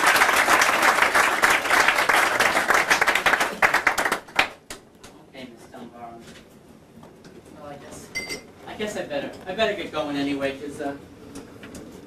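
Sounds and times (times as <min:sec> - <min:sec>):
ringing clink: 0:08.1 - 0:08.5.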